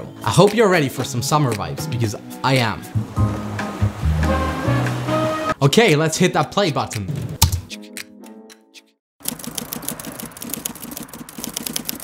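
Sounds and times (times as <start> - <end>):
background music with bass notes: 0.0 - 8.4.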